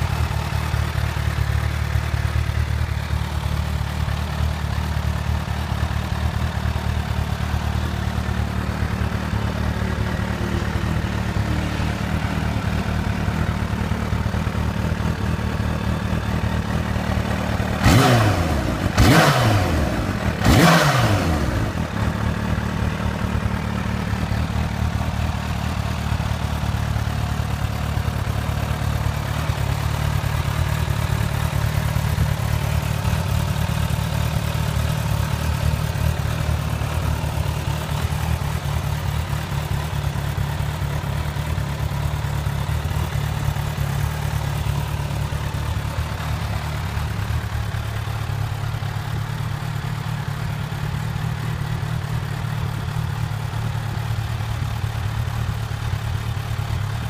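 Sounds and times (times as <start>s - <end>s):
motorcycle engine idling: 0.0s - 57.0s
engine revving blips: 17.8s - 21.7s.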